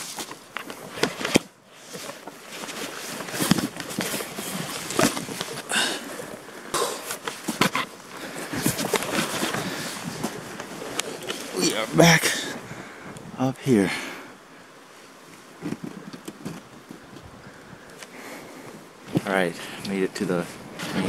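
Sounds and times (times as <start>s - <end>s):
grass and clothing rustling: 0.0s - 21.0s.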